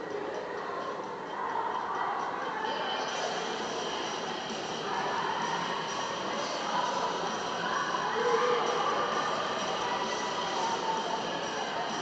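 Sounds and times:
indoor swimming pool ambience: 0.0s - 12.0s.

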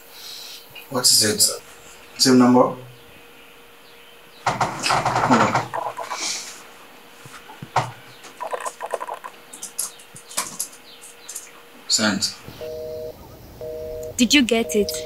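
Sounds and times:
laptop keys typing: 4.5s - 6.2s, 8.4s - 11.5s
movement rustle: 4.5s - 13.6s.

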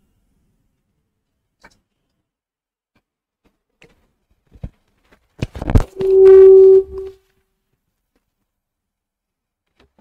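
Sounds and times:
steady electronic tone: 5.8s - 7.1s.

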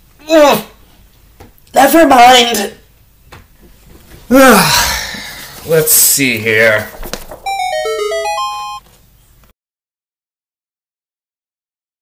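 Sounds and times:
chiming jingle: 7.5s - 8.8s.

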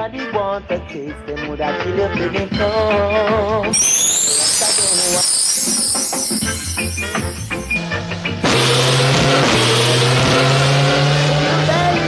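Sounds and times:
reggae music: 0.0s - 12.0s
held bass note: 3.8s - 9.0s.

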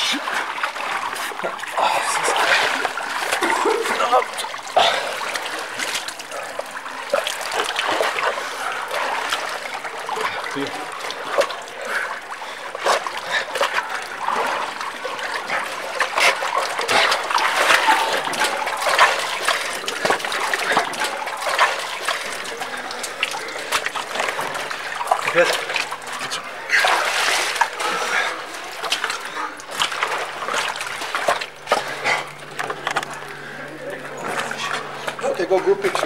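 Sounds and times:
swimmers splashing in water: 0.0s - 36.0s.

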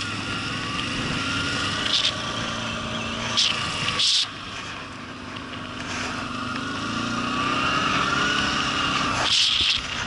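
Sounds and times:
quad bike engine speeding up: 0.0s - 10.0s.

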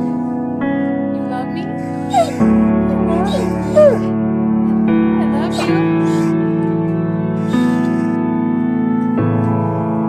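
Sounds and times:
piano-like music: 0.0s - 10.0s
dog whining: 1.8s - 4.2s, 5.4s - 6.4s.

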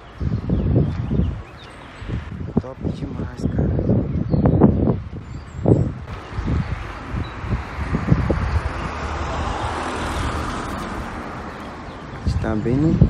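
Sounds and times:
low traffic rumble: 0.0s - 13.0s
road traffic rushing past: 4.8s - 13.0s.

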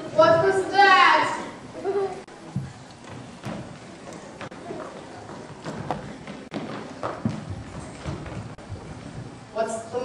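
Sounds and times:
footsteps on stage floor: 2.3s - 9.6s.

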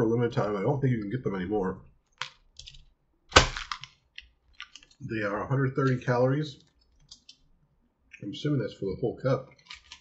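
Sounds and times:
plastic wrapper crackling: 2.1s - 5.0s, 9.6s - 10.0s.

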